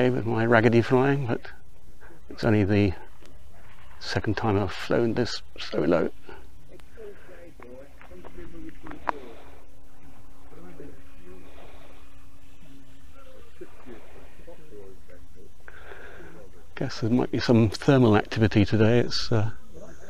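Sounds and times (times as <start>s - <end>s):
electric motor and propeller humming: 0.0s - 20.0s
indistinct voices: 0.0s - 20.0s.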